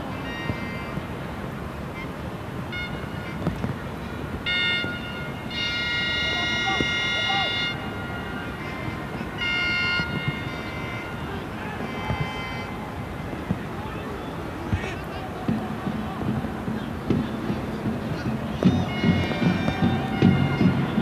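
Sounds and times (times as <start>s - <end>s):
spectators blowing horns: 0.0s - 21.0s
stadium crowd background noise: 0.0s - 21.0s.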